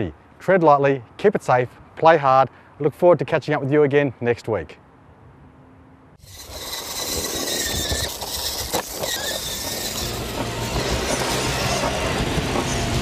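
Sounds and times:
loud steady vehicle noise: 6.1 - 13.0.

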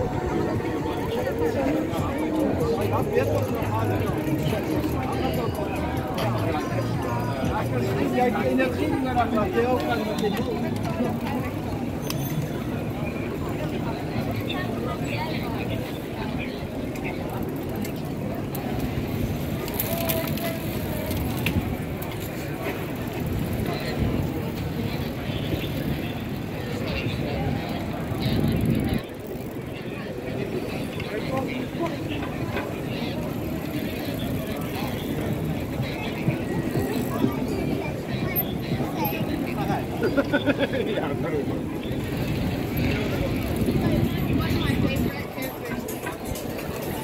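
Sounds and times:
indistinct voices and chatter: 0.0 - 47.0.

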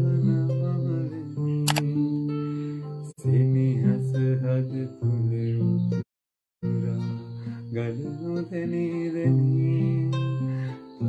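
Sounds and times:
acoustic guitar: 0.0 - 6.0, 6.6 - 11.0
mouse click: 1.7 - 1.9.

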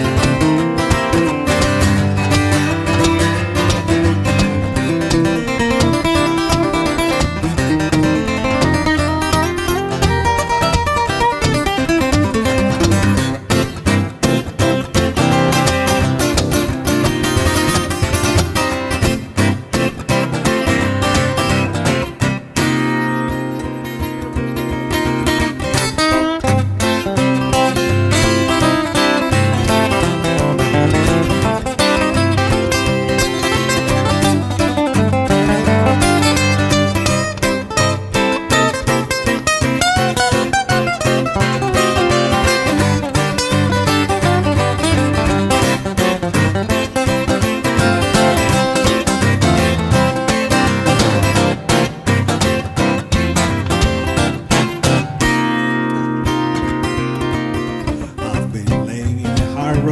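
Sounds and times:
acoustic guitars playing bluegrass: 0.0 - 59.9.

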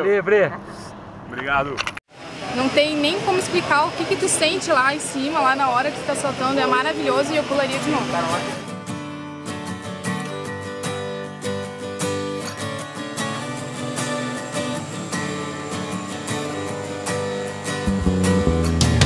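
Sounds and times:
strummed acoustic guitar music: 3.8 - 19.0
low end bass: 17.9 - 19.0.

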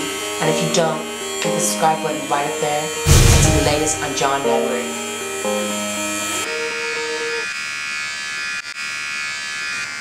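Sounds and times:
background music: 0.0 - 7.4
electric hair clippers buzzing: 0.0 - 10.0.

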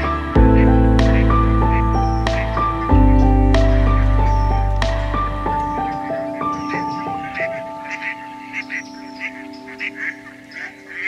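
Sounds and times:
background music with held chords: 0.0 - 11.0
ducks quacking: 5.9 - 11.0.

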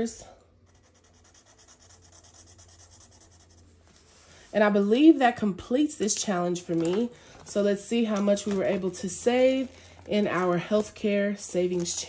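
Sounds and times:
marker scratching on paper: 0.6 - 3.8.

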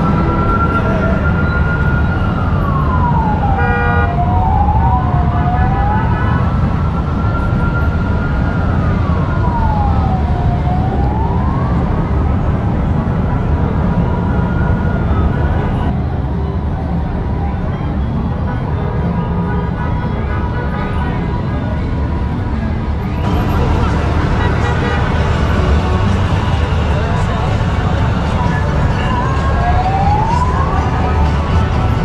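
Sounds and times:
motorcycle engines rumbling: 0.0 - 32.0
siren wailing: 0.0 - 32.0.

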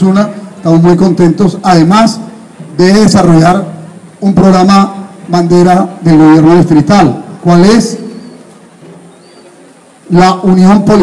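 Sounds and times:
high bird chirps: 8.0 - 9.7.

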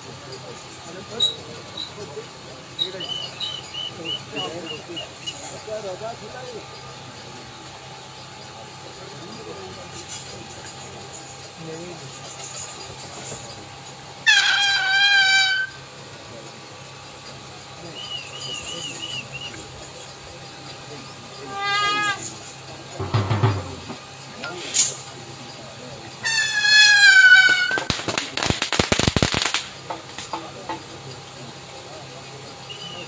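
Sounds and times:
high-pitched wavering yells: 14.2 - 15.8, 21.4 - 22.3, 26.2 - 27.9
rattle of sharp cracks: 26.8 - 31.0.

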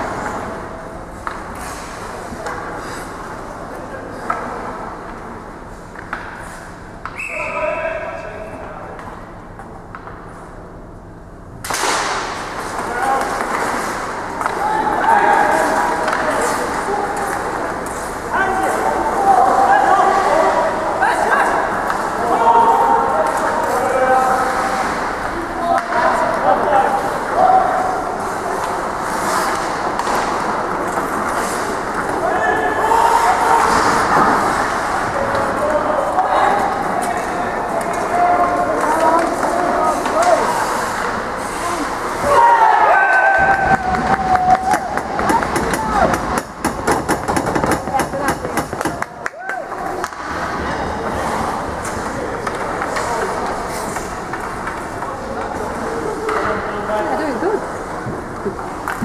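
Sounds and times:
echoing indistinct voices: 0.0 - 59.0.

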